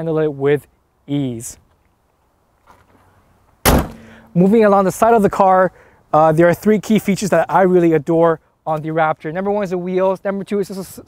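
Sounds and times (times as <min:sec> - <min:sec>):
car hood closing with bang: 0:03.7 - 0:04.2.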